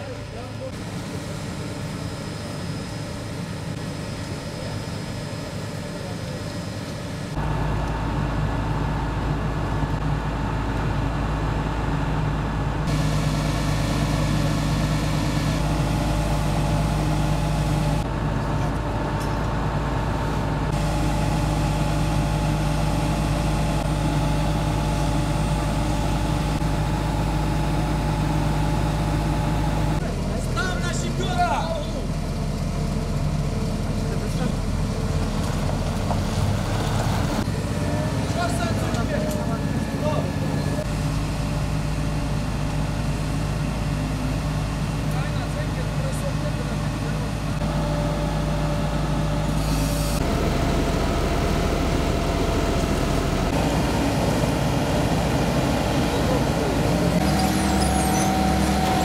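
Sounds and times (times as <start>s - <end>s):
diesel engine running: 0.0s - 59.0s
high wavering squeak: 57.2s - 59.0s.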